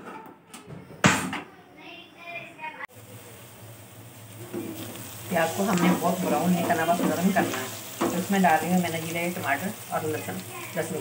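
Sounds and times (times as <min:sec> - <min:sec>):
onions sizzling in oil: 0:02.9 - 0:11.0.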